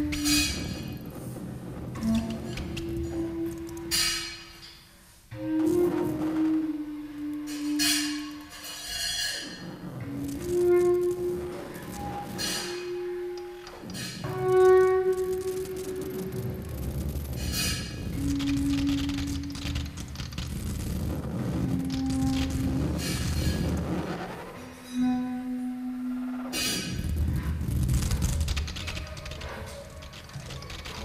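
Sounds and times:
bass clarinet long notes: 0:05.4 - 0:08.6, 0:10.0 - 0:17.3, 0:18.0 - 0:23.9, 0:24.9 - 0:27.8.

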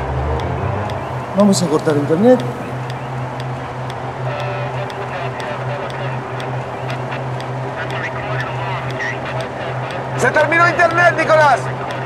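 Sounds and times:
idling vehicle engines hum: 0:00.0 - 0:12.0
murmur of voices: 0:00.9 - 0:12.0.

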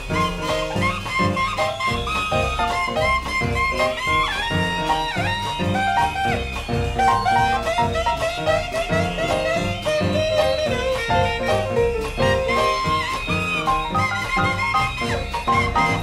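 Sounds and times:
drums: 0:00.0 - 0:16.0
lead horn with bending notes: 0:00.0 - 0:16.0
piano: 0:00.0 - 0:16.0.

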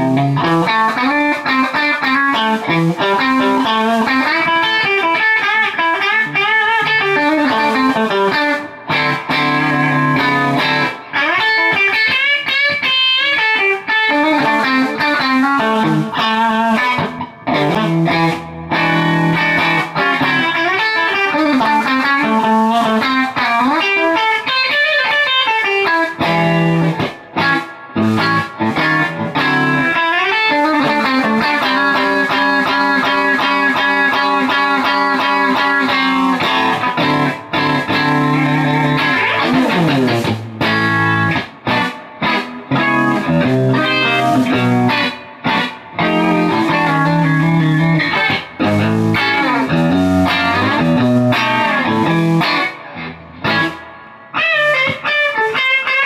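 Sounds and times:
electric guitar blues lead: 0:00.0 - 0:56.0.

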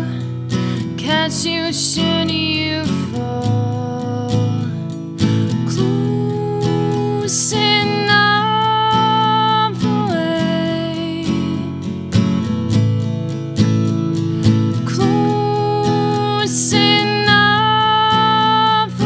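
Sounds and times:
woman singing: 0:00.0 - 0:12.0, 0:14.7 - 0:19.0
strummed acoustic guitar: 0:00.0 - 0:19.0.

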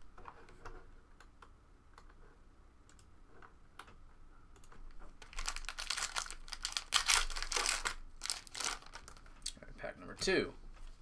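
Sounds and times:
foil wrappers crinkling and tearing: 0:05.2 - 0:09.3.

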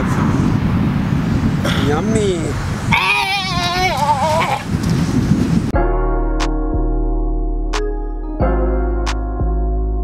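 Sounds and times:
outdoor background noise: 0:00.0 - 0:05.8
person wailing: 0:02.9 - 0:04.7
electric piano chords: 0:05.8 - 0:10.0.

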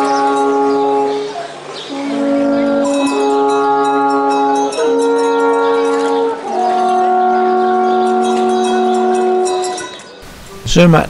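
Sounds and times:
alphorns playing in harmony: 0:00.0 - 0:11.0.

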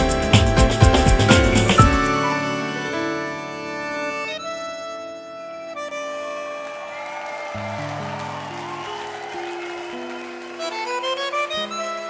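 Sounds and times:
bandoneon playing slow chords: 0:00.0 - 0:06.9.

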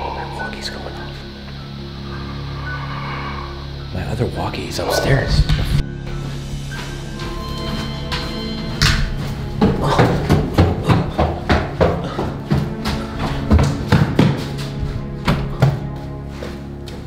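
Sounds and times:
background music drone: 0:00.0 - 0:17.0
hurried footsteps on stairs: 0:05.5 - 0:17.0.

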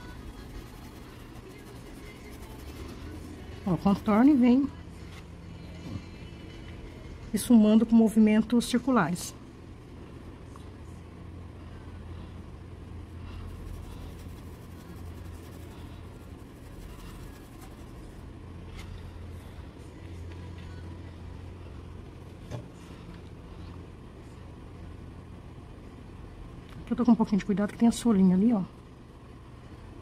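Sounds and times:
paintbrush scrubbing cloth: 0:00.0 - 0:04.4, 0:13.2 - 0:18.2
low background hum: 0:00.0 - 0:30.0.

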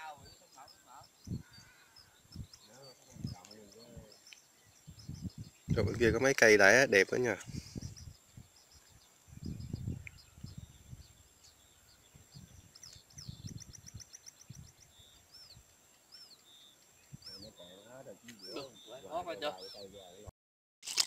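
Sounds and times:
small birds chirping: 0:00.0 - 0:20.3
bird whistled calls: 0:16.2 - 0:20.0.

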